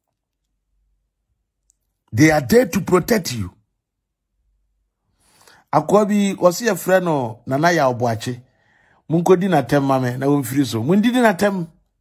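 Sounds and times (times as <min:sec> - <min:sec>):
very faint clicks: 0:01.5 - 0:02.1.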